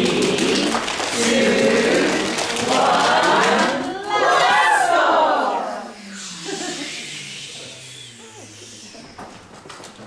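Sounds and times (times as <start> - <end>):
people quietly laughing: 6.3 - 10.0.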